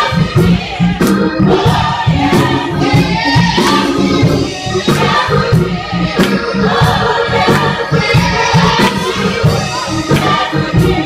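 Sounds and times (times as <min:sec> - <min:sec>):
instrumental accompaniment: 0:00.0 - 0:11.0
steady bass beat: 0:00.0 - 0:11.0
women's gospel choir singing: 0:00.0 - 0:11.0.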